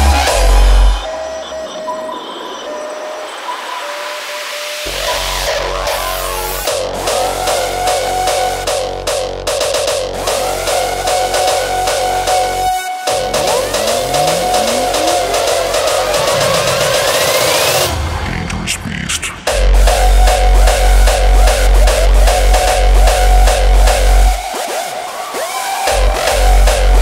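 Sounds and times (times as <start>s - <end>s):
electronic dance track: 7.0s - 17.9s.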